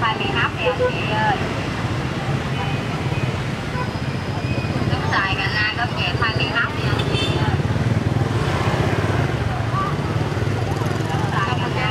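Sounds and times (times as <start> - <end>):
crowd chatter: 0.0 - 11.9
motorbikes passing: 0.0 - 11.9
street traffic drone: 0.0 - 11.9.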